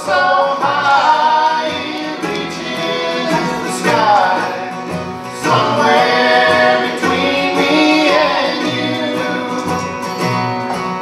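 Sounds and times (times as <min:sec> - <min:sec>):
harmony singing: 0:00.0 - 0:10.3
bluegrass band playing: 0:00.0 - 0:11.0.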